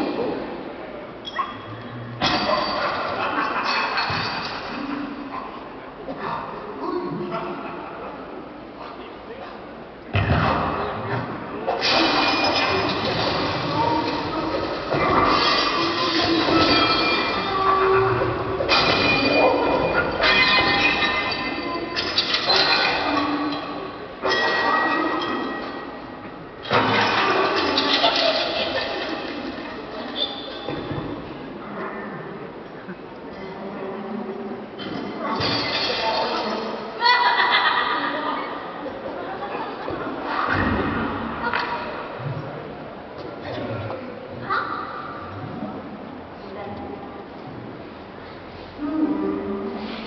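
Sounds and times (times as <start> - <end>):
noisy mechanical soundscape: 0.0 - 50.0.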